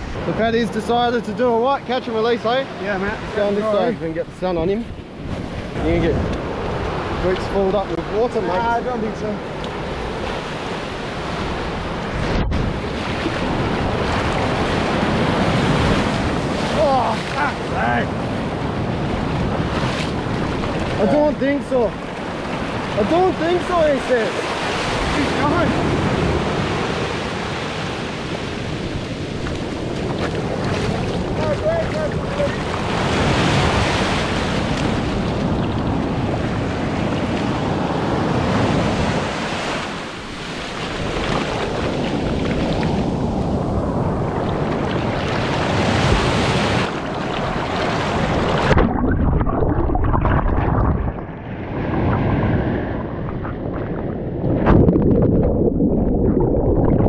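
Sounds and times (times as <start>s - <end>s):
waves breaking on a beach: 0.0s - 49.0s
wind buffeting microphone: 3.1s - 57.0s
underwater rumbling and gurgling: 17.6s - 21.0s, 28.5s - 38.6s, 46.8s - 57.0s.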